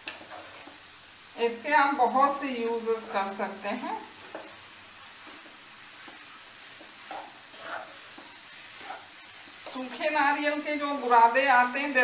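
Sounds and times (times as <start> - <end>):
metal spatula stirring in a pan: 0.0 - 0.9, 4.0 - 12.0
steady soft cooking hiss: 0.0 - 12.0.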